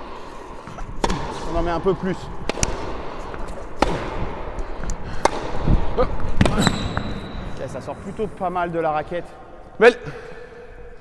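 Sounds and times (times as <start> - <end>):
rackets striking tennis ball: 0.0 - 7.7
tennis ball bouncing: 0.7 - 1.6, 2.4 - 7.2.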